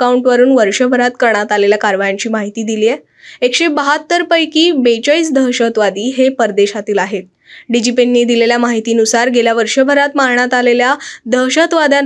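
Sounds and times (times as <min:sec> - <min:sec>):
woman narrating: 0:00.0 - 0:12.0.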